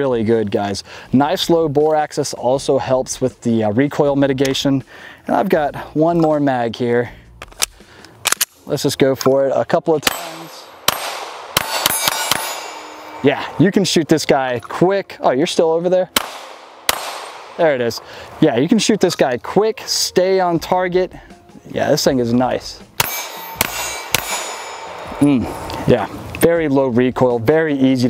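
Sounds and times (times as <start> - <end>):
pistol shots: 10.0 - 13.3, 16.2 - 17.8, 23.0 - 25.3
steel plate targets ringing: 10.0 - 13.6, 16.2 - 17.6, 23.0 - 25.6.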